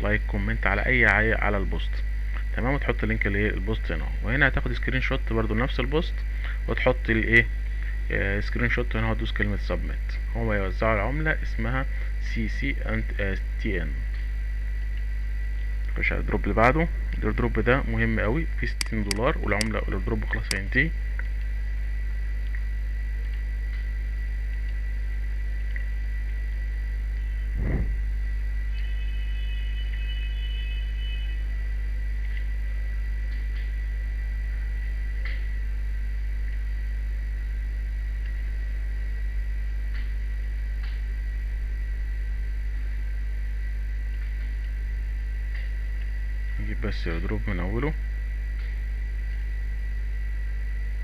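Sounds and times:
low electrical hum: 0.0s - 51.0s
thin high whine: 22.8s - 51.0s
thump: 27.6s - 27.9s.

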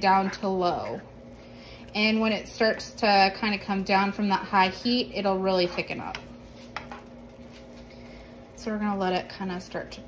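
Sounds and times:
spoon stirring food in pan: 0.0s - 3.6s, 5.5s - 7.9s.

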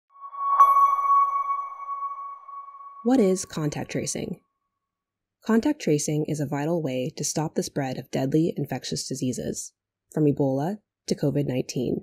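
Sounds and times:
electronic chime ping: 0.1s - 3.9s.

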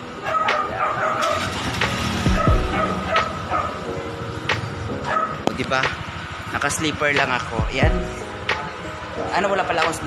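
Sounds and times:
street traffic: 0.0s - 10.0s
vehicle passing with low rumble: 1.2s - 9.2s.

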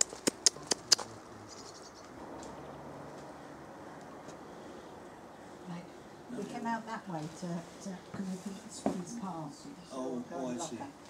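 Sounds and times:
faint outdoor background: 0.0s - 11.0s.

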